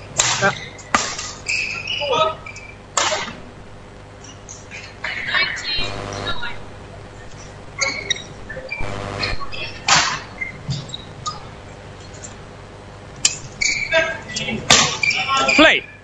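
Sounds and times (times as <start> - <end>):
voices and short shouts: 13.7 - 15.9.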